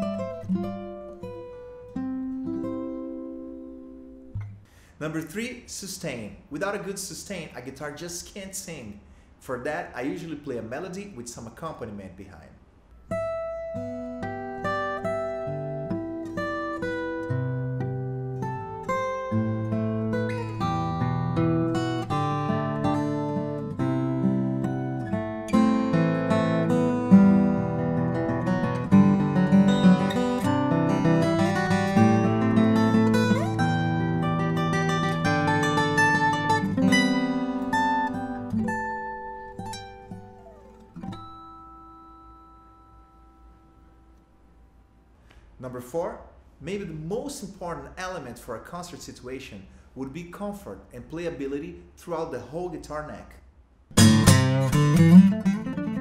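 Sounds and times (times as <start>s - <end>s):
fingerstyle acoustic guitar: 0.0s - 4.7s, 13.0s - 44.4s, 53.9s - 56.0s.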